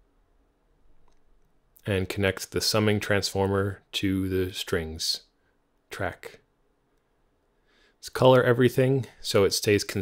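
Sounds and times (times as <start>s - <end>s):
faint click: 1.0s - 1.9s
man's voice: 5.9s - 6.4s, 8.0s - 10.0s.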